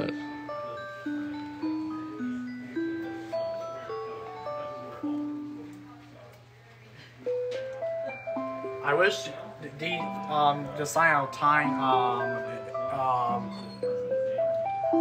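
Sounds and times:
clock electronic chime melody: 0.0 - 6.0, 7.3 - 15.0.

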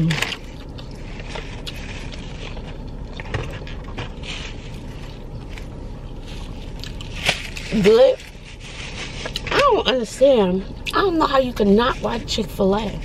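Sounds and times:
car cabin rumble: 0.0 - 13.0.

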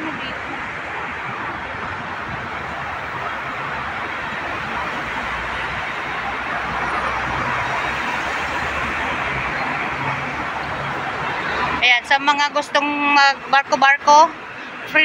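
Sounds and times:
city street traffic: 0.0 - 15.0
vehicle engine hum: 0.0 - 15.0.

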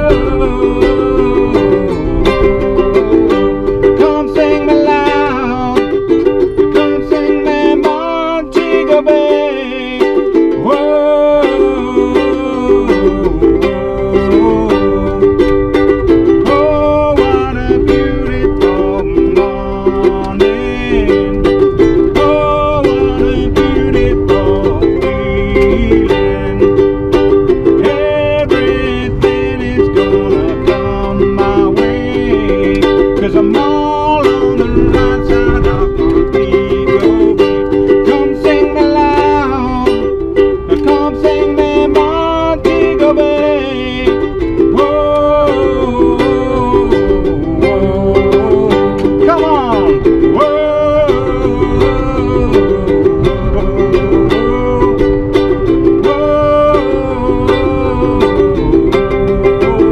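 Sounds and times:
man singing: 0.0 - 59.9
ukulele strumming: 0.0 - 59.9.

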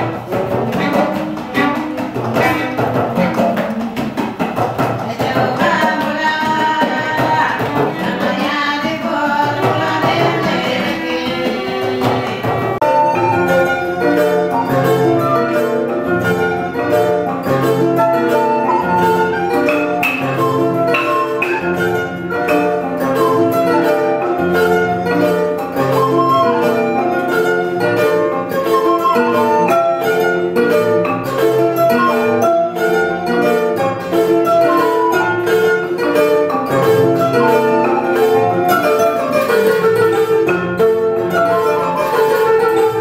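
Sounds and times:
balafon playing rapid melody: 0.0 - 43.0
steady percussion beat: 0.0 - 43.0.

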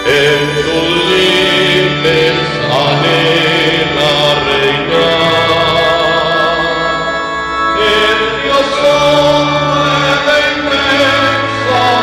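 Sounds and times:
choir singing a hymn: 0.0 - 12.0.

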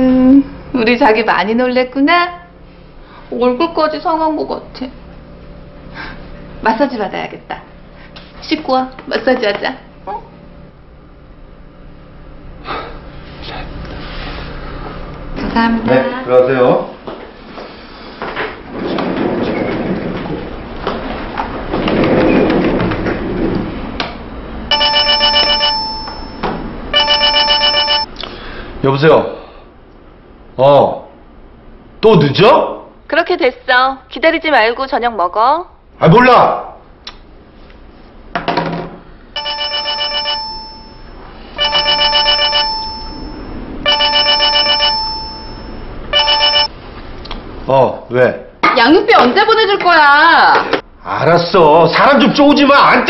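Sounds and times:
mobile phone ringing: 24.7 - 28.1, 39.4 - 46.8.

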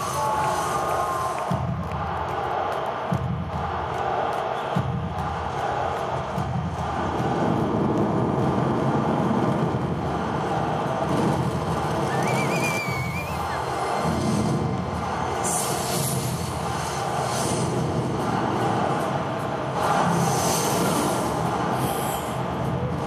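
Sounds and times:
crowd cheering: 0.0 - 23.0
whistle: 12.0 - 14.1.

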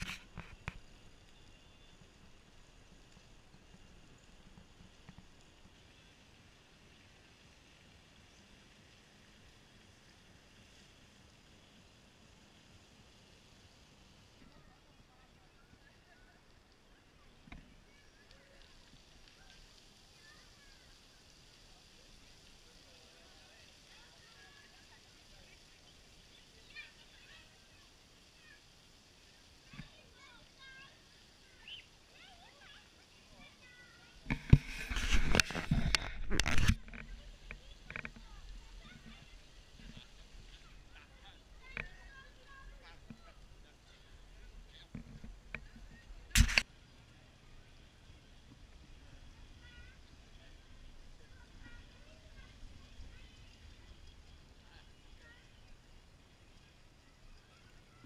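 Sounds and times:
fountain water splashing: 0.0 - 58.0
loud rough noise near microphone: 33.6 - 55.4.

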